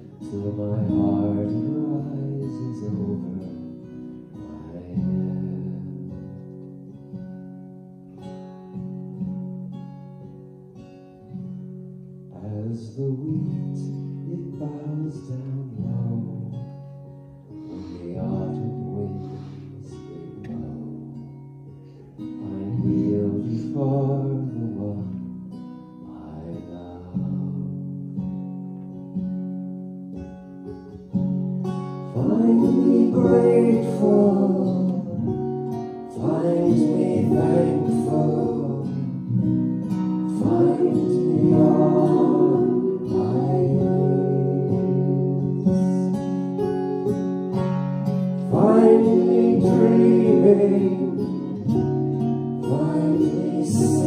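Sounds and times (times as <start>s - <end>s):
acoustic guitar strumming: 0.0s - 54.0s
voices singing: 32.1s - 46.3s, 48.4s - 54.0s.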